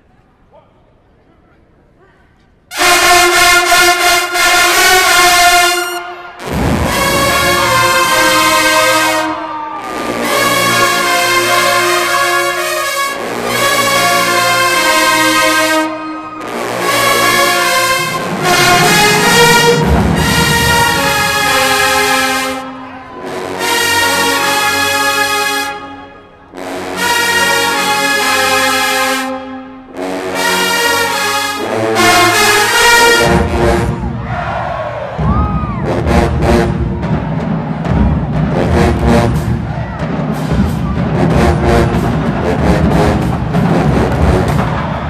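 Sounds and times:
marching band brass chords: 2.7s - 45.0s.

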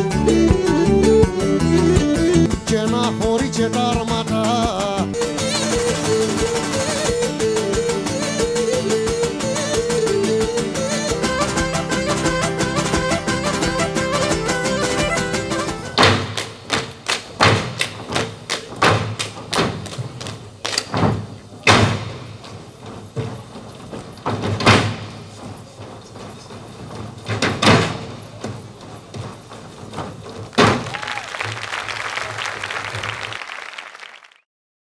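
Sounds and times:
folk dance music on lutes: 0.0s - 34.4s
thumps: 13.0s - 31.6s.

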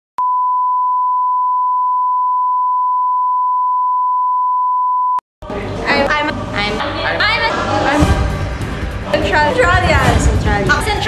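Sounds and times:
steady test tone beep: 0.2s - 5.2s.

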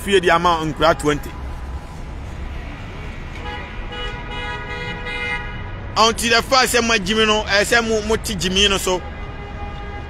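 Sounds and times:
city traffic rumble: 0.0s - 10.0s
vehicle horn: 3.4s - 5.8s, 8.8s - 10.0s.

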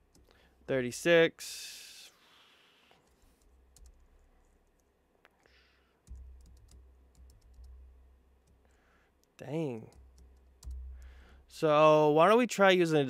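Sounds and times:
computer keyboard typing: 3.0s - 4.9s, 6.0s - 11.5s.

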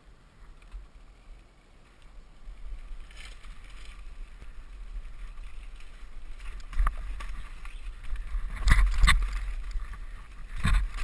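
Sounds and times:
bike rattling over rocks: 0.2s - 11.0s
wind on microphone: 2.1s - 11.0s.

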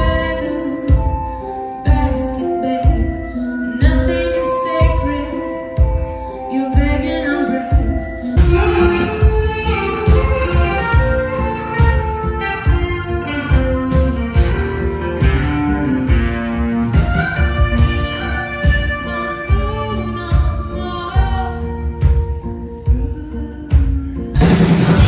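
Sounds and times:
woman singing: 0.0s - 10.4s, 18.1s - 24.5s
drums: 0.0s - 25.0s
guitar: 0.0s - 25.0s
keyboard: 0.0s - 25.0s.

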